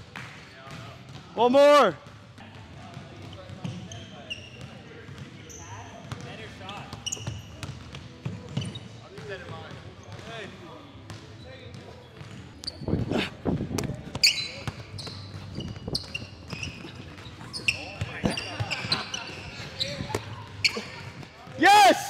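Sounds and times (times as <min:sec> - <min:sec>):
players' voices: 0:00.5 - 0:22.0
sneakers squeaking: 0:02.0 - 0:21.7
loud shouting: 0:21.6 - 0:22.0.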